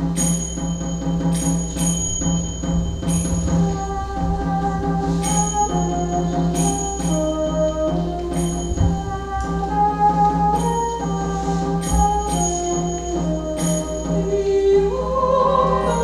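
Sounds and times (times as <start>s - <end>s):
bell-like percussion strokes: 0.0s - 16.0s
held melody notes: 0.0s - 16.0s
low pulsing drone: 0.0s - 16.0s.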